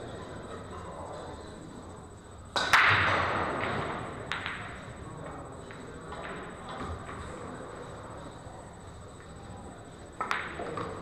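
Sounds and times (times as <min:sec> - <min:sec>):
pool balls clacking: 0:02.6 - 0:04.9, 0:10.2 - 0:11.0.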